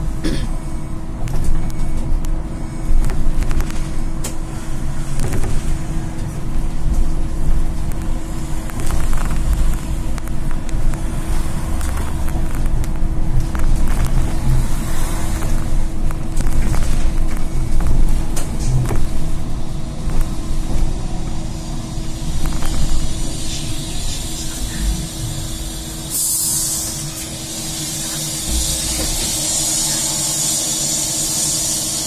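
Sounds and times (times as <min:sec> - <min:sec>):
low road rumble: 0:00.0 - 0:30.7
steady hum: 0:00.0 - 0:32.0.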